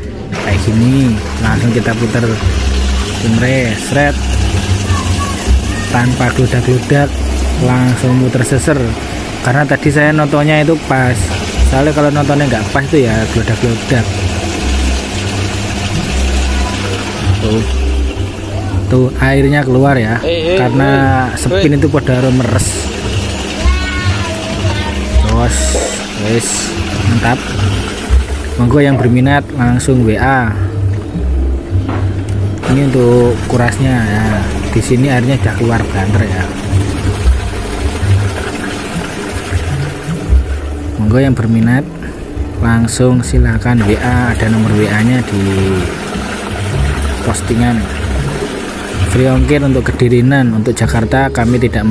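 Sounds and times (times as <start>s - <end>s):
washing machine spinning: 0.0s - 51.9s
water draining through hose: 0.0s - 51.9s.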